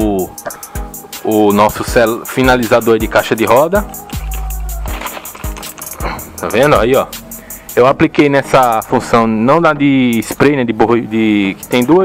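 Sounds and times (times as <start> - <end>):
kick drums: 3.8 - 7.1.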